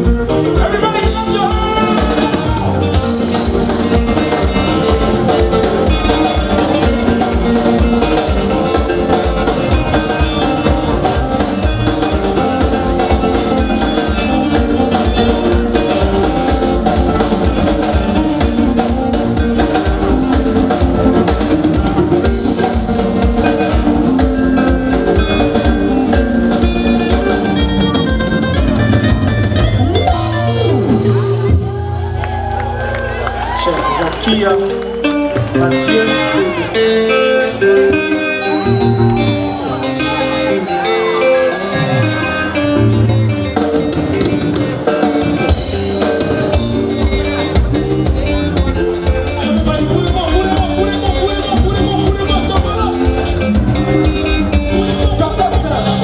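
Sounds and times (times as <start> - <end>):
drum kit fast beats: 0.0 - 31.8, 41.4 - 56.0
live band playing: 0.0 - 56.0.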